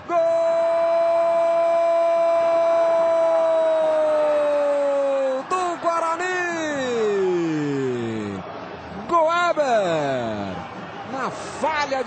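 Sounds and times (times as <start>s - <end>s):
narrator shouting goal: 0.0s - 8.4s.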